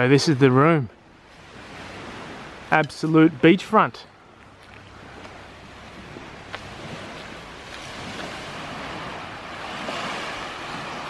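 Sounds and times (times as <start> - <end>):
sea waves washing on sand: 0.0 - 11.0.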